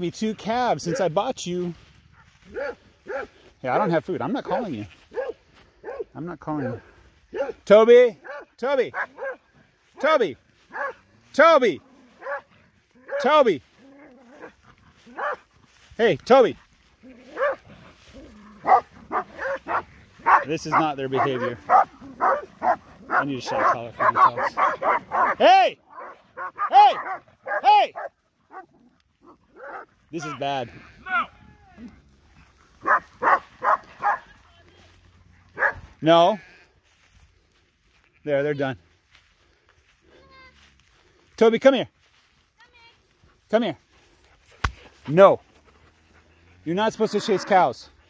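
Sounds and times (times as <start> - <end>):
dog barking: 2.2 - 7.6, 8.2 - 9.4, 10.7 - 11.0, 12.2 - 13.3, 14.3 - 15.5, 17.3 - 17.6, 18.5 - 29.9, 32.8 - 34.3, 35.6 - 35.8, 47.2 - 47.6.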